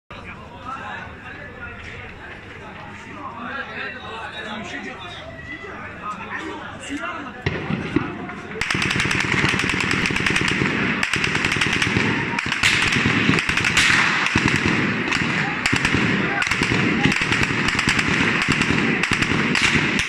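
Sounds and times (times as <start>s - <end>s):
voices: 0.1s - 20.0s
rapid automatic gunfire: 7.4s - 20.0s.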